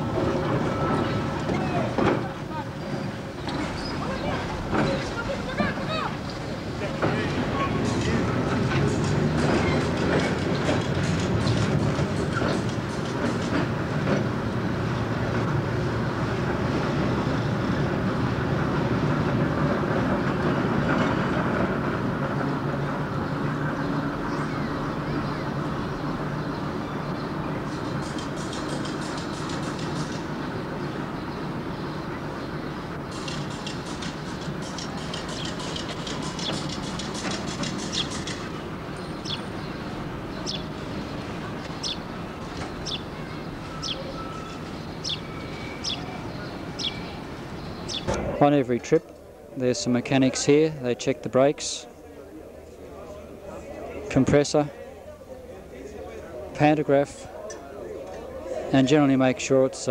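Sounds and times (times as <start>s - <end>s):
wheels clicking over rail joints: 0.0s - 18.0s, 27.6s - 30.9s, 32.9s - 48.2s
electric railcar rumbling: 0.0s - 59.9s.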